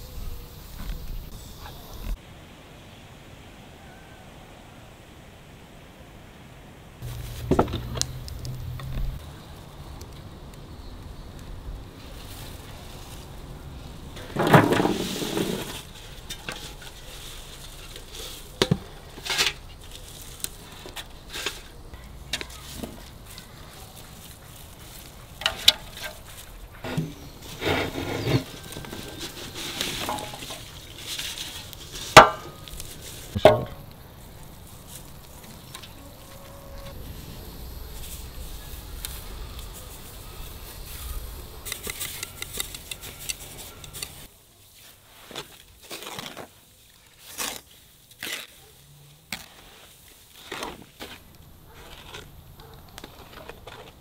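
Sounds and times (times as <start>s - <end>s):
fern fronds rustling: 7.0s - 54.0s
metal basins knocking and clinking: 27.8s - 30.9s.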